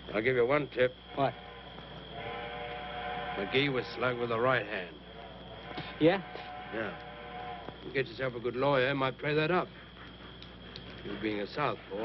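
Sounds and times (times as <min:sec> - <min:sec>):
sustained chord of steady tones: 0:00.0 - 0:12.0.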